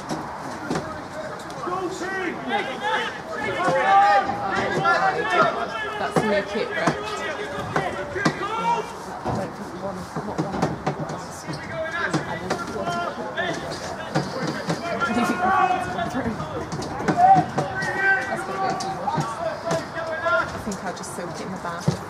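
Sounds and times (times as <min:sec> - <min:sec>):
people talking: 0:00.5 - 0:22.0.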